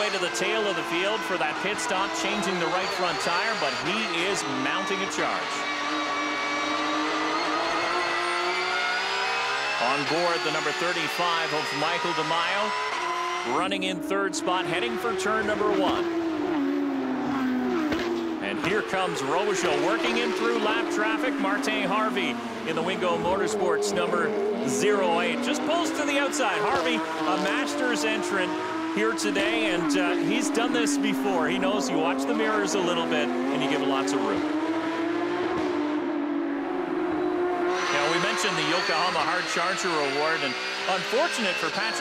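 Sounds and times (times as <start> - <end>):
race car engine running: 0.0 - 42.0.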